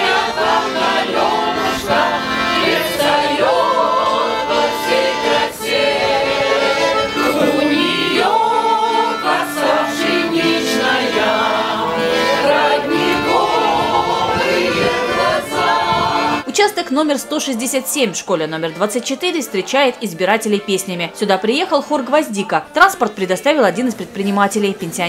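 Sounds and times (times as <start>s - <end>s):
choir singing folk song: 0.0s - 22.8s
button accordion: 0.0s - 25.0s.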